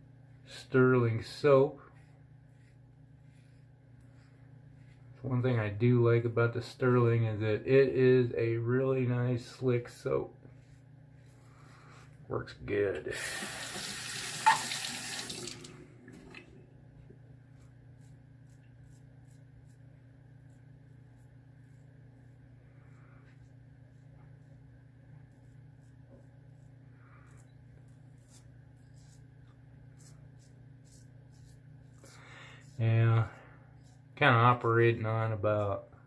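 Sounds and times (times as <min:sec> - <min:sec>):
faint steady hum: 0:00.0 - 0:36.0
water running from sink tap: 0:13.2 - 0:16.4.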